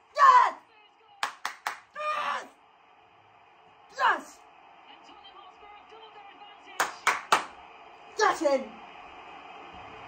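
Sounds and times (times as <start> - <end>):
televised football match: 0.0 - 10.0
sharp hand claps: 1.2 - 1.9, 6.8 - 7.6.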